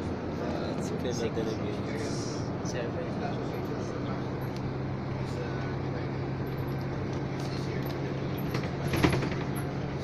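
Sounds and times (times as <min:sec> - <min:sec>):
road noise inside cabin: 0:00.0 - 0:10.0
vehicle engine drone: 0:00.0 - 0:10.0.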